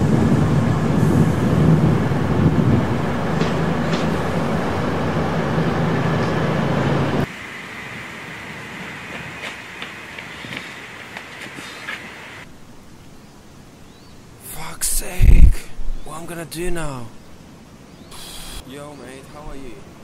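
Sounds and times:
train running hum: 0:00.0 - 0:12.5
light footsteps: 0:09.1 - 0:12.1.

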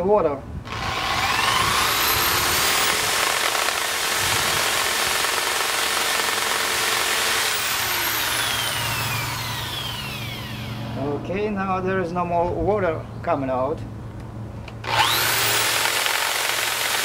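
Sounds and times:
electric drill whirring: 0:00.7 - 0:11.0, 0:14.8 - 0:17.0.

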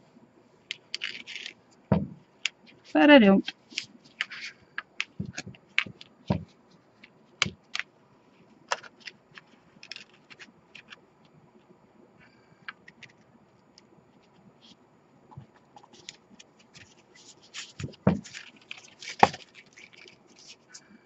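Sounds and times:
paper rustling: 0:00.9 - 0:11.0, 0:15.8 - 0:20.9
low thumps: 0:01.9 - 0:02.2.

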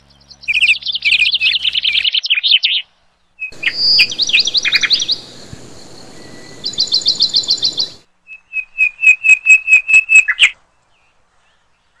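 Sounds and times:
high upswept bird chirps: 0:00.1 - 0:11.2
whistled bird notes: 0:00.1 - 0:12.0.

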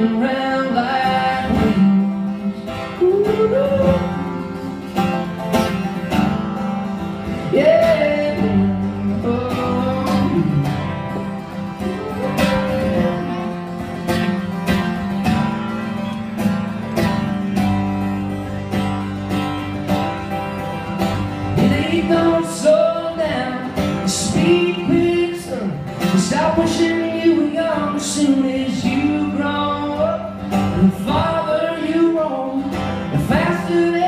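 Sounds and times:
acoustic guitars strumming: 0:00.0 - 0:34.0.

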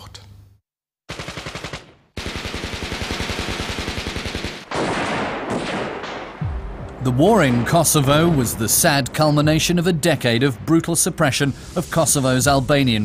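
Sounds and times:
automatic gunfire bursts: 0:01.1 - 0:06.2
rough gun blasts: 0:01.1 - 0:06.6.

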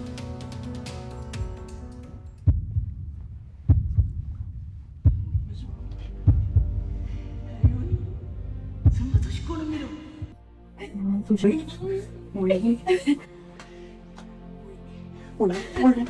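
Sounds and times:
deep heartbeat thuds: 0:02.4 - 0:10.5
low hum: 0:02.5 - 0:13.2.

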